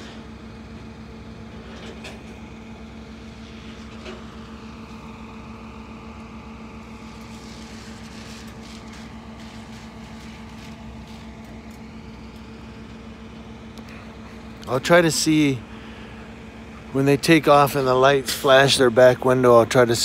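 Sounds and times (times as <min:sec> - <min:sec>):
vehicle engines idling: 0:00.0 - 0:20.0.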